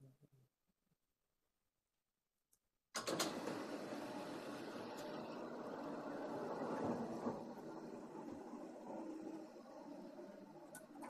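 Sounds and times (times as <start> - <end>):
room noise: 3.0 - 11.0.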